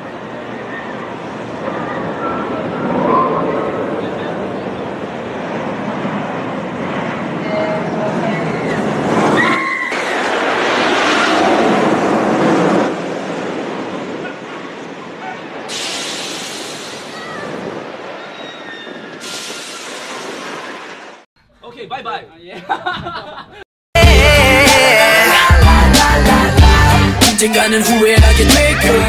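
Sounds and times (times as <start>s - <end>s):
roller coaster rushing on track: 0.0s - 21.2s.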